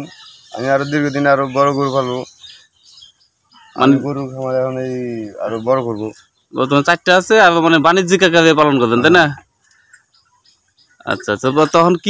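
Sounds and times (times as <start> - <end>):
person speaking: 3.8 - 9.4.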